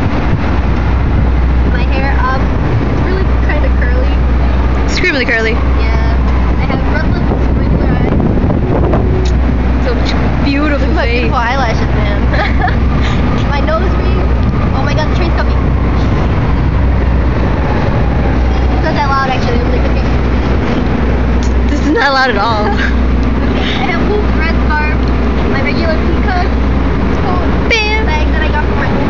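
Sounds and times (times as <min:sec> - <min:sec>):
deep low drone: 0:00.0 - 0:29.0
rumbling city noise: 0:00.0 - 0:29.0.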